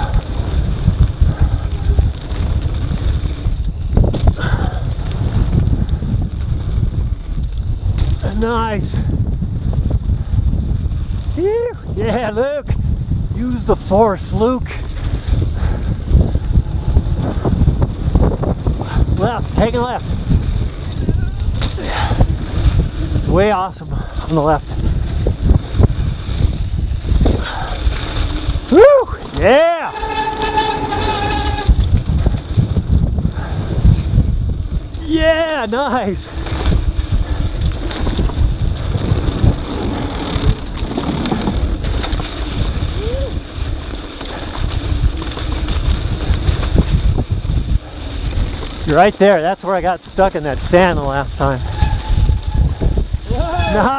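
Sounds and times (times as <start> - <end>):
mountain bike rumble and rattle: 0.0 - 53.9
wind buffeting microphone: 0.0 - 53.9.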